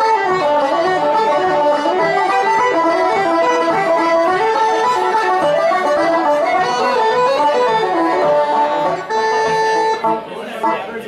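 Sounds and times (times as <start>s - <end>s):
accordion folk tune: 0.0s - 11.0s.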